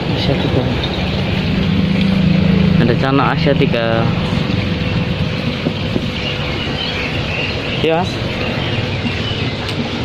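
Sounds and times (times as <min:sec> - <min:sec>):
low engine hum: 0:00.0 - 0:10.0.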